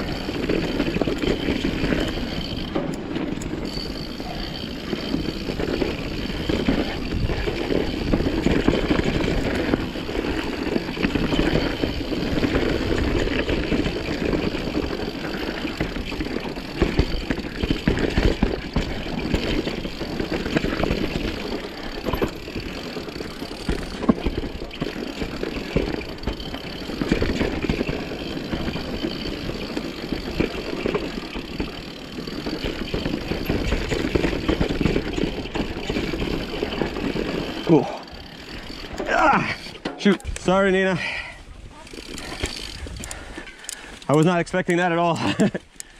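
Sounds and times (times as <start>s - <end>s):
bike knocks and rattles: 0.0s - 40.4s
bike tyres rumbling on dirt: 0.0s - 45.6s.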